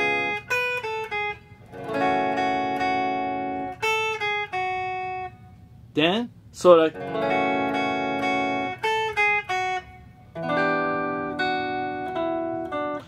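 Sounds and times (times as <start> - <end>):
clean electric guitar chords: 0.0 - 5.7, 6.9 - 13.0.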